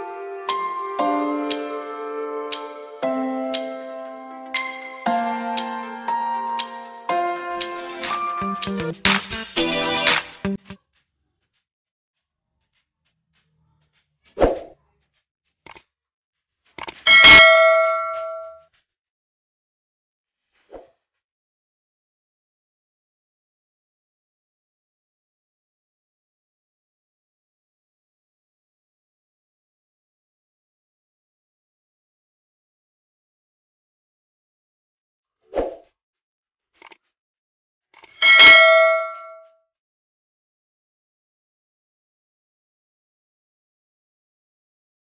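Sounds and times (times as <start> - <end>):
bell-like ding ringing: 17.1 - 18.4, 38.2 - 39.4
steel bowl ringing when struck: 38.2 - 39.3.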